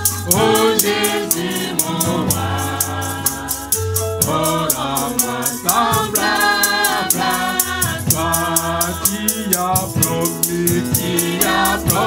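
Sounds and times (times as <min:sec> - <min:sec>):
low steady accompaniment: 0:00.0 - 0:12.0
person singing gospel song: 0:00.0 - 0:12.0
rattle keeping fast beat: 0:00.0 - 0:12.0.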